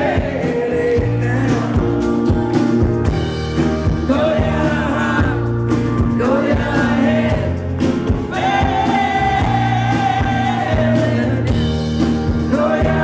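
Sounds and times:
man singing: 0:00.0 - 0:02.2, 0:03.8 - 0:11.7, 0:12.3 - 0:13.0
drums: 0:00.0 - 0:13.0
electric bass: 0:00.0 - 0:13.0.

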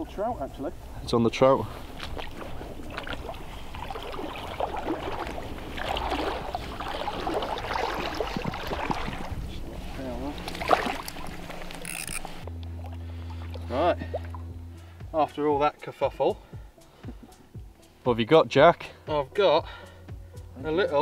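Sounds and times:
low wind rumble: 0:00.0 - 0:15.8
fish thrashing water: 0:01.9 - 0:09.7, 0:10.3 - 0:14.5.

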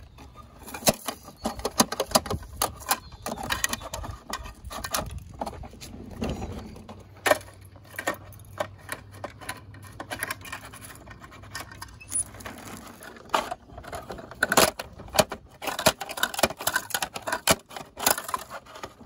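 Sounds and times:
toy truck mechanism clicking: 0:00.0 - 0:05.6, 0:06.9 - 0:19.0.

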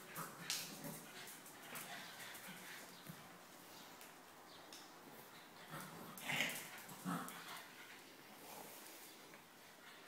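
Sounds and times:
dogs play-wrestling: 0:00.0 - 0:03.4, 0:05.2 - 0:08.2.

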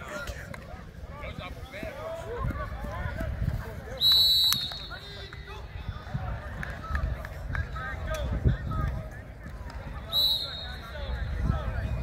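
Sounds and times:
whistle blast: 0:04.0 - 0:05.3, 0:10.1 - 0:11.2.

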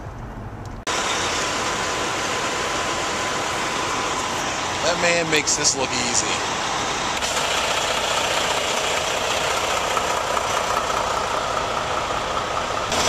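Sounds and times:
vehicle engine idling: 0:00.1 - 0:13.0.

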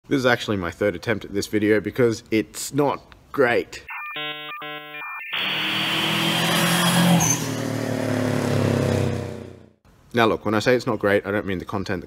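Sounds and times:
short electronic tones: 0:03.9 - 0:07.2
car engine revving effect: 0:05.3 - 0:09.7.

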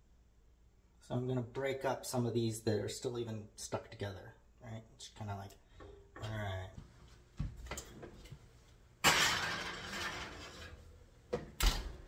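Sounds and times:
glass dish scraping on oven rack: 0:09.0 - 0:10.9
oven door shutting: 0:11.3 - 0:12.0.

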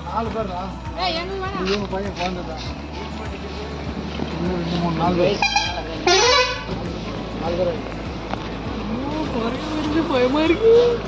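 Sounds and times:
background music: 0:00.0 - 0:11.0
voices: 0:00.0 - 0:11.0
vehicle horn: 0:05.3 - 0:06.8.

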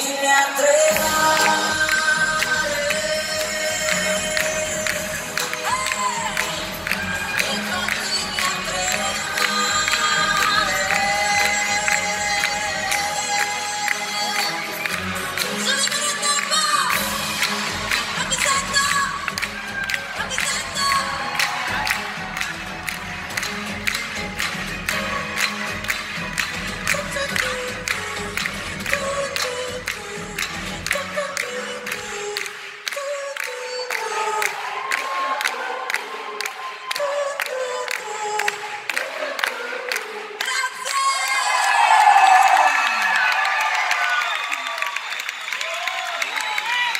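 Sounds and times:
woman singing: 0:00.0 - 0:22.4, 0:26.7 - 0:41.8
crowd cheering: 0:00.0 - 0:27.7, 0:32.7 - 0:46.9
live pop band playing: 0:00.0 - 0:32.4.

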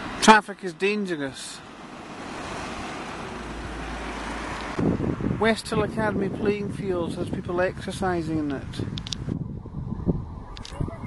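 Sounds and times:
wind buffeting microphone: 0:02.5 - 0:11.0
light clicks: 0:08.5 - 0:09.2.

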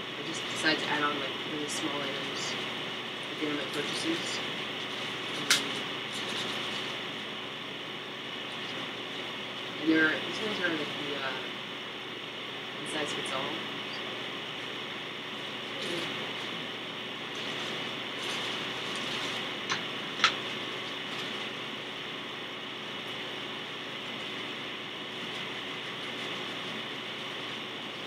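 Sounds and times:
plastic bag handled: 0:17.4 - 0:19.5.

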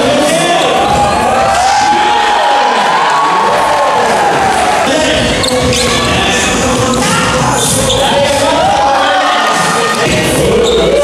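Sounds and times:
loud music with gliding melody: 0:03.8 - 0:11.0.

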